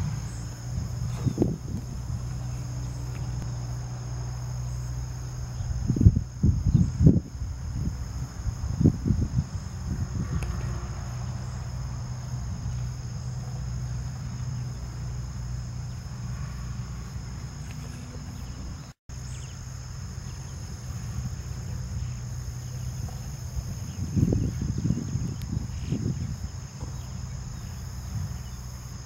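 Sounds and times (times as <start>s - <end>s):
wind buffeting microphone: 0.0s - 19.5s, 20.2s - 29.0s
insects trilling: 0.0s - 29.0s
low steady rumble: 0.0s - 29.0s.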